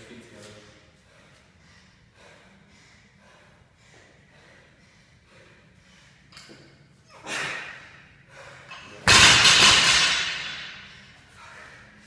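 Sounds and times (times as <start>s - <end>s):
barbell crashing onto rubber floor: 9.0s - 10.9s.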